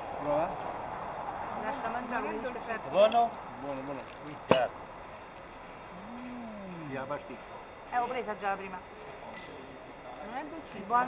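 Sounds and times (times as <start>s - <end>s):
person humming mmm: 5.9s - 7.0s.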